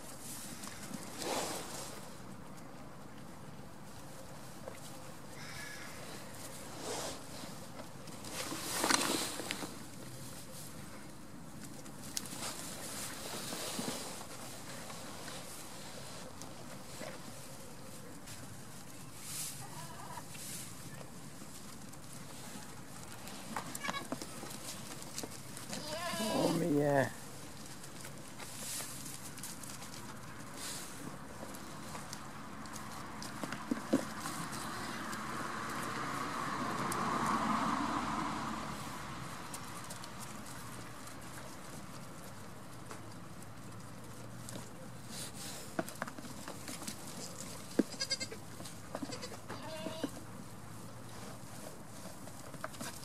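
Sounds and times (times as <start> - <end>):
goat bleating: 19.6 - 20.2, 23.7 - 24.2, 25.7 - 26.6, 47.8 - 50.1
hooves knocking on wooden boards: 31.2 - 37.6.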